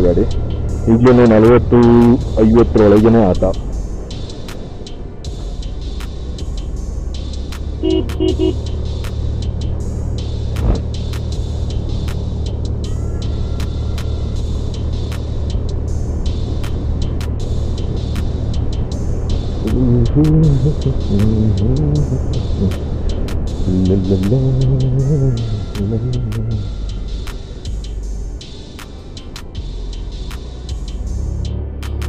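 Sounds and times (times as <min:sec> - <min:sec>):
horn toots: 0:07.7 - 0:08.9.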